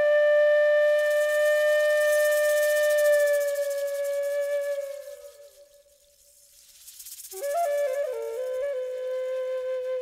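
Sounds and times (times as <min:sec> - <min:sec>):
flute holding long note: 0:00.0 - 0:05.5, 0:07.4 - 0:10.0
soft high hiss: 0:00.0 - 0:10.0.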